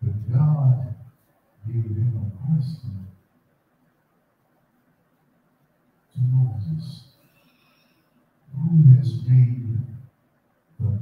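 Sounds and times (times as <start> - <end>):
man's deep voice through microphone: 0.0 - 1.0, 1.6 - 3.1, 6.2 - 7.1, 8.5 - 10.1, 10.8 - 11.0.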